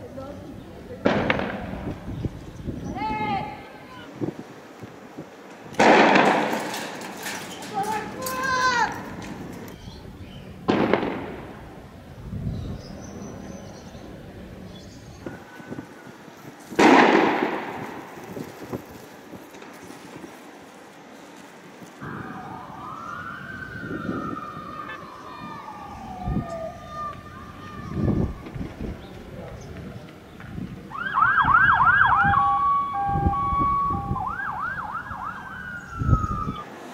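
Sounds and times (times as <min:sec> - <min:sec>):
loud bangs: 0:01.0 - 0:02.4, 0:05.7 - 0:09.7, 0:10.6 - 0:11.8, 0:16.7 - 0:18.5
siren rising and falling: 0:22.0 - 0:27.2, 0:31.0 - 0:36.7.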